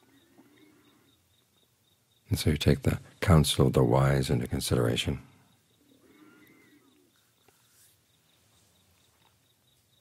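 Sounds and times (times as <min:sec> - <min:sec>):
faint chirps: 0:00.0 - 0:10.0.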